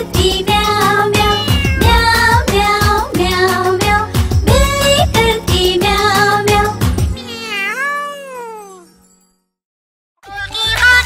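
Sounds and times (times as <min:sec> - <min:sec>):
children's song backing music: 0:00.0 - 0:07.1, 0:10.2 - 0:11.0
cartoon cat meow: 0:01.2 - 0:02.1, 0:07.2 - 0:08.9.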